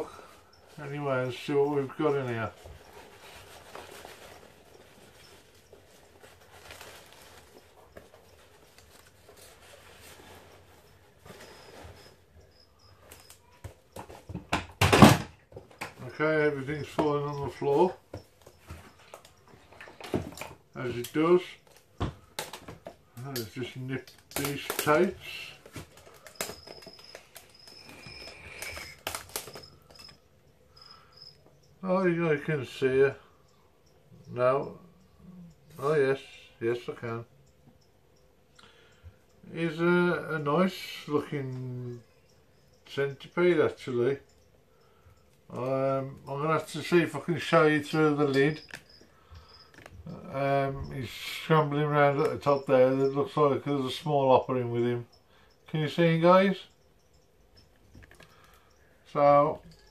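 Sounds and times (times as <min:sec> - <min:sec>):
paper rustling: 0:01.8 - 0:12.1, 0:23.5 - 0:30.2
items clattering on floor: 0:02.3 - 0:12.2, 0:13.1 - 0:16.2, 0:16.8 - 0:20.7, 0:21.6 - 0:23.0, 0:24.0 - 0:30.2
plastic and tape crackling: 0:02.6 - 0:12.0, 0:18.4 - 0:30.2.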